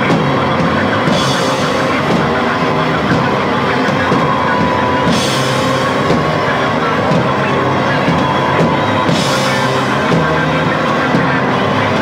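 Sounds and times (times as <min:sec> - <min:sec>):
drums: 0:00.0 - 0:12.0
electric guitars droning: 0:00.0 - 0:12.0
high held note: 0:00.0 - 0:12.0.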